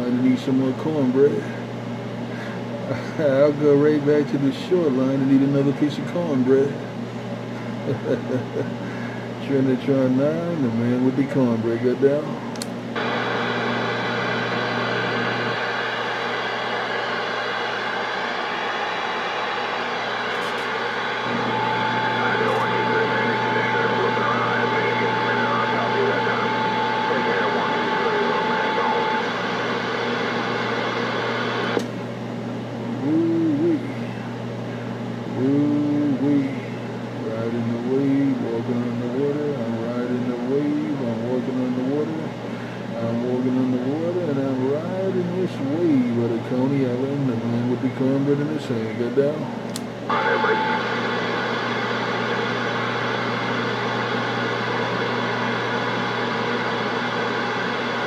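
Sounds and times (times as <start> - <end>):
steady low hum: 0.0 - 58.0
radio static hiss: 13.0 - 31.9, 33.0 - 49.4, 50.1 - 58.0
garbled voices over radio: 22.0 - 29.4.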